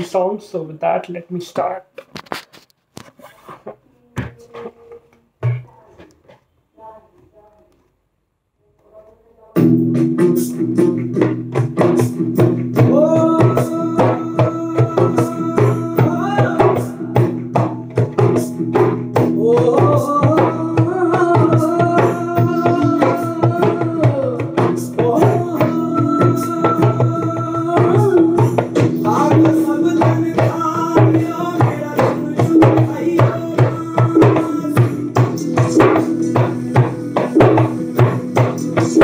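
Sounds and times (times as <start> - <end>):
djembe hand drumming: 9.6 - 39.0.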